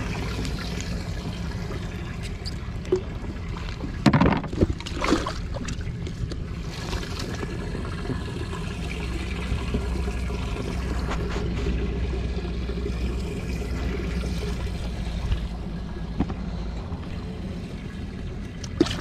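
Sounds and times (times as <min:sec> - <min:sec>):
idling boat motor hum: 0:00.0 - 0:19.0
water trickling: 0:00.0 - 0:19.0.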